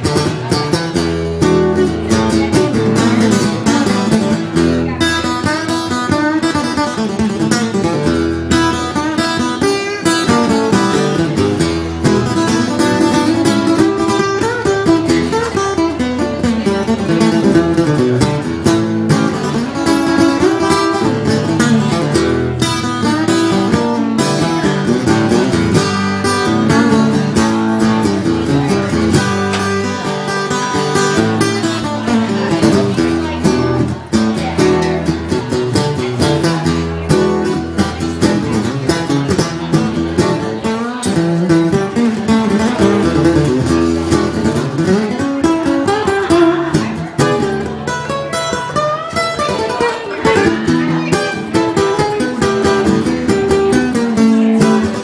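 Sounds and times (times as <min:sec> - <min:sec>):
acoustic guitar blues: 0:00.0 - 0:55.0.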